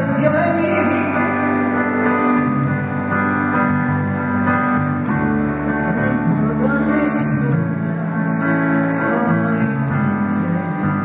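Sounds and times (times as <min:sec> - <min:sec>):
electric guitar and keyboard: 0:00.0 - 0:11.0.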